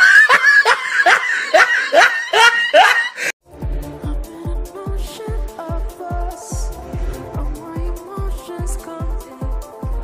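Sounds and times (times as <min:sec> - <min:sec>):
person laughing hard: 0:00.0 - 0:03.3.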